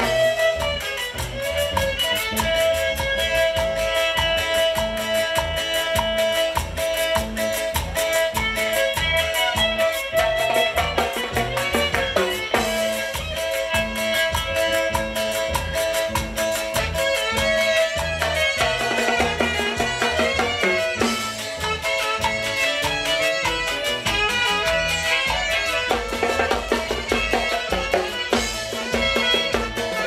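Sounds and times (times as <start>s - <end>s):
live band playing dance music: 0.0s - 30.0s.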